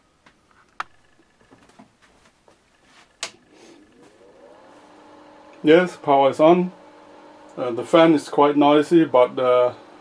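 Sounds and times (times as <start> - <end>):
cooling fan humming: 0.0 - 10.0.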